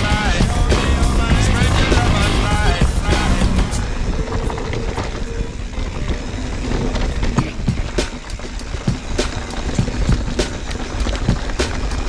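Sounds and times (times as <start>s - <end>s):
bike knocking and rattling: 0.0s - 12.0s
bike tyres on loose stone: 0.0s - 12.0s
wind rumble on microphone: 0.0s - 12.0s.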